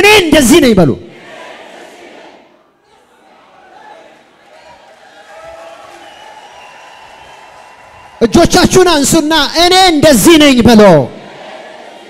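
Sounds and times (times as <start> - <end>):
applause and crowd noise: 2.9 - 8.6.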